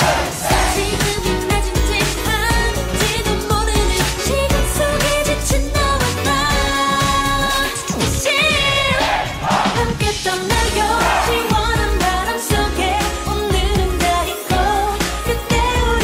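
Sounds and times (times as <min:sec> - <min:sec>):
dance beat: 0:00.0 - 0:12.7
female group pop song: 0:00.0 - 0:16.0.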